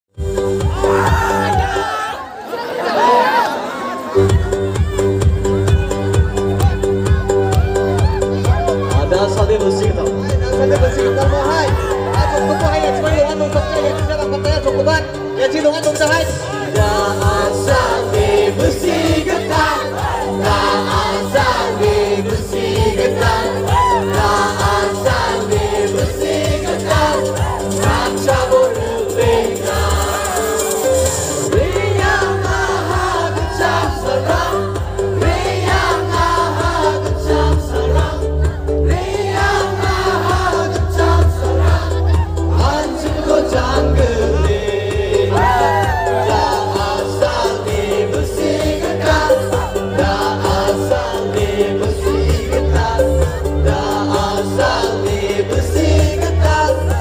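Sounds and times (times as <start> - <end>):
bass and drum beat: 0.1 - 1.9, 4.2 - 15.2, 15.8 - 57.0
live band playing: 0.1 - 2.1, 4.0 - 57.0
crowd shouting and cheering: 0.1 - 57.0
voices singing together: 0.6 - 4.7, 10.5 - 14.5, 16.0 - 57.0.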